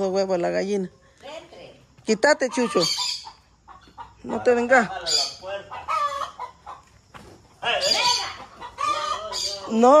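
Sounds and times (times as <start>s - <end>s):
chickens clucking: 2.1s - 10.0s.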